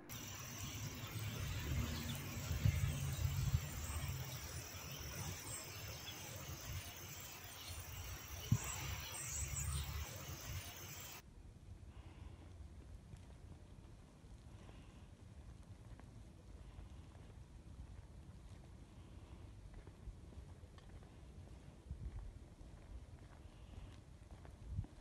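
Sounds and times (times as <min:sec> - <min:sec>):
faint high chirping: 0:00.0 - 0:11.2
steady hiss: 0:00.0 - 0:11.2
wind buffeting microphone: 0:00.1 - 0:11.2.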